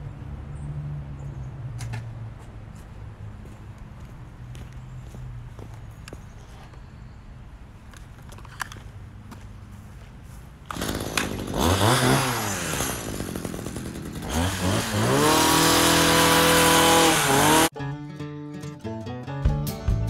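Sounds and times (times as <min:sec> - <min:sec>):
hedge trimmer engine revving: 0:10.7 - 0:17.7
acoustic guitar music: 0:17.8 - 0:20.0.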